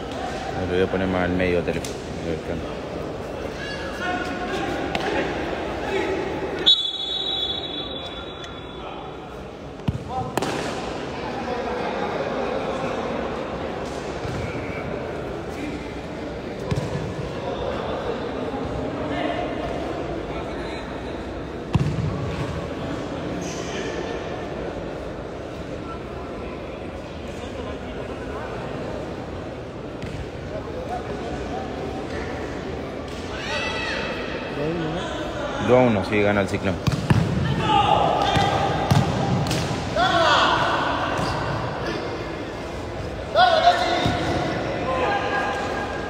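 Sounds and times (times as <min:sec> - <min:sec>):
echoing voices in a hall: 0:00.0 - 0:46.0
ball kicked and bouncing on court: 0:16.6 - 0:17.1, 0:38.2 - 0:39.8.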